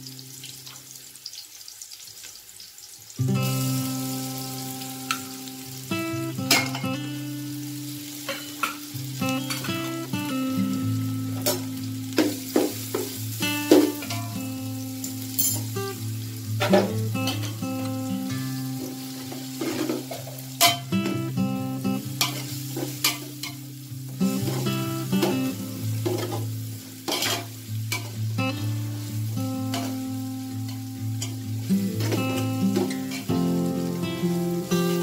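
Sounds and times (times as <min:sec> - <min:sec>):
background music: 0:03.2 - 0:35.0.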